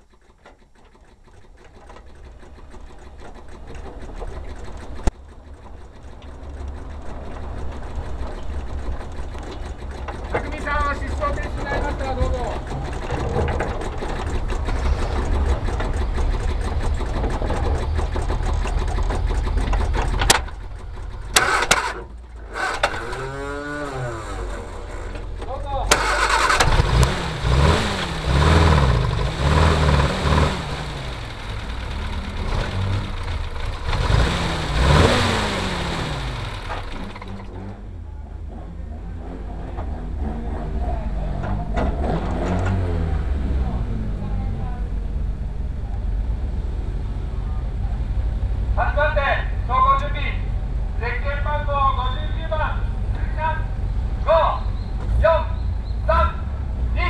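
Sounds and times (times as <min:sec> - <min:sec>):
car engine revving: 0:01.4 - 0:57.0.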